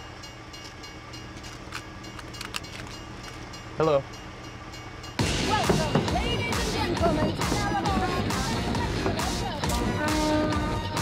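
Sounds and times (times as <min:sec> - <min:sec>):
large engine idling: 0:00.0 - 0:11.0.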